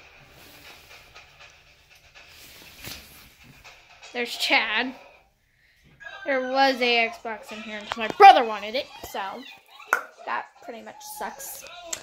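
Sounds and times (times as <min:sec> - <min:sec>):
faint panting breaths: 0:05.0 - 0:06.0.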